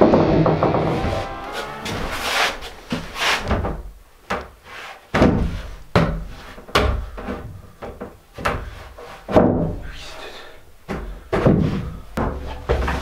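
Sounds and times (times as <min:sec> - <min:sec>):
wooden boards knocking and thudding: 0:00.0 - 0:02.1, 0:05.1 - 0:08.7, 0:09.3 - 0:09.8, 0:10.9 - 0:13.0.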